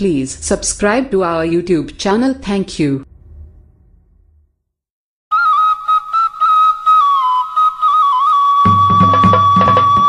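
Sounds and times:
solo flute melody: 5.3s - 10.0s.

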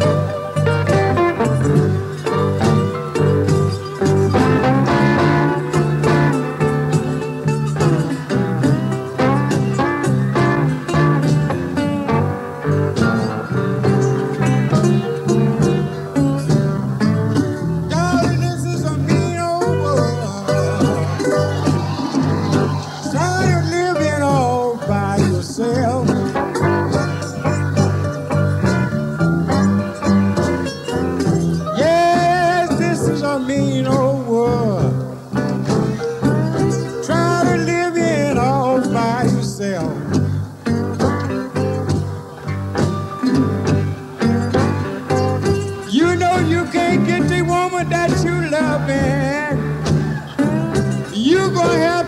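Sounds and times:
blues guitar: 0.0s - 52.0s.

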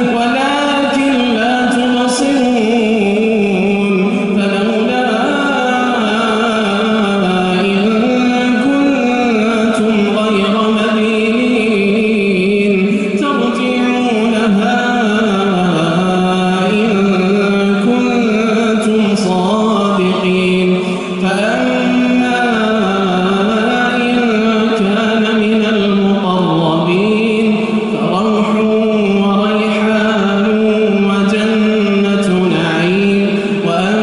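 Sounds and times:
man chanting melodically: 0.0s - 34.0s.

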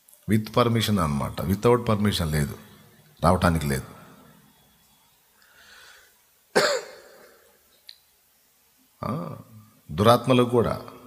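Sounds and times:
soft intake of breath: 5.4s - 6.4s
man coughing: 6.5s - 7.4s.

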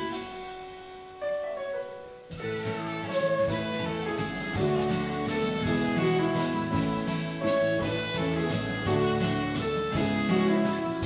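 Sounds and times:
acoustic band playing: 0.0s - 11.0s
woodwind melody: 0.0s - 11.0s.

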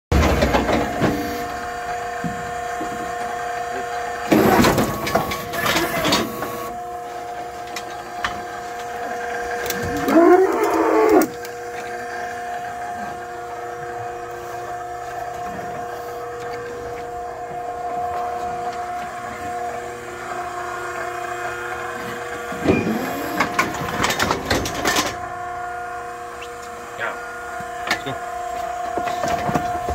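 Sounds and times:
hydraulic power unit humming: 0.1s - 29.9s
cow mooing: 9.7s - 11.4s
metal clatter of chute: 22.5s - 25.4s.

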